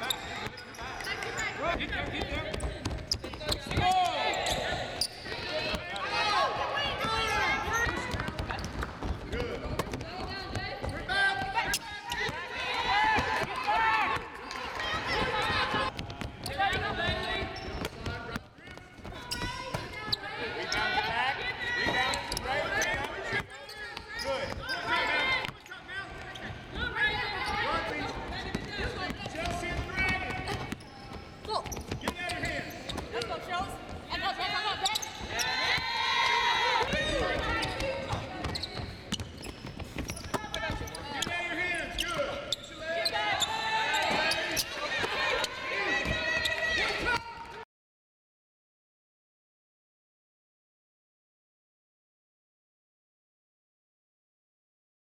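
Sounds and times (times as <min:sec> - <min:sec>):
sneakers squeaking: 0:00.0 - 0:47.6
players calling out: 0:00.1 - 0:18.4, 0:19.1 - 0:47.6
basketballs bouncing on hardwood: 0:01.3 - 0:04.0, 0:06.9 - 0:14.2, 0:26.7 - 0:42.4.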